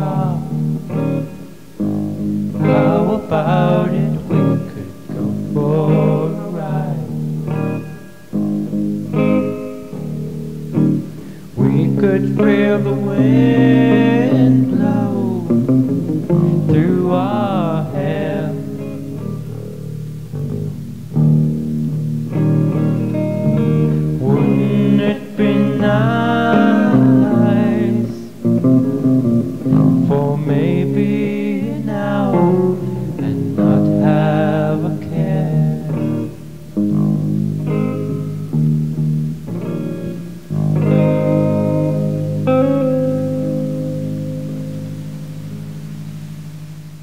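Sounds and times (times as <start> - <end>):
person singing: 0.0 - 1.6, 2.6 - 8.2, 11.0 - 19.6, 23.9 - 36.6
guitar chords ringing: 0.0 - 47.0.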